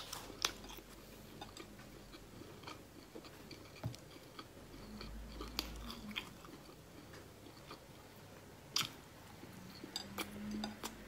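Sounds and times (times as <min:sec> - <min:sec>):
chewing soft food: 0:00.0 - 0:11.0.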